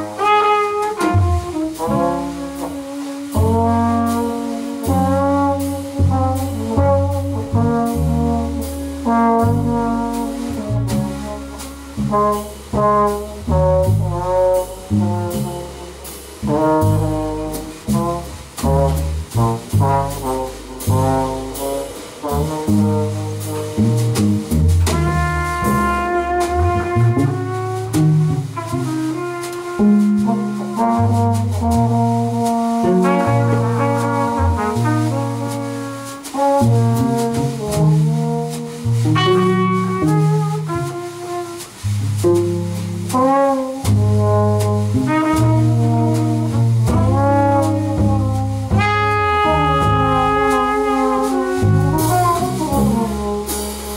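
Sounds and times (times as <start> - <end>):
drums and cymbals: 0.0 - 53.9
electric bass: 0.0 - 53.9
trombone: 0.0 - 53.9
trumpet: 0.0 - 53.9.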